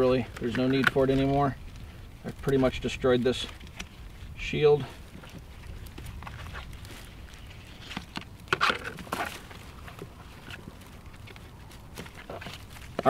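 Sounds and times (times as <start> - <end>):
straps scraping and knocking: 0.0 - 1.6, 2.2 - 13.0.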